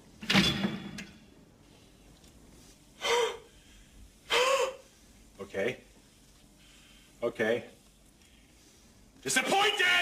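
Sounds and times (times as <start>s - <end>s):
person gasping: 3.0s - 5.0s.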